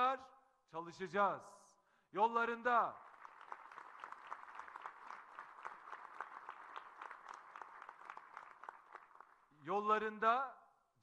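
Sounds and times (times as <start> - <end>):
audience applauding: 3.0 - 9.4.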